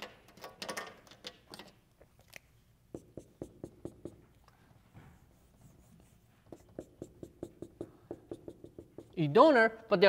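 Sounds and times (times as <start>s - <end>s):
marker on a whiteboard: 2.9s - 9.6s.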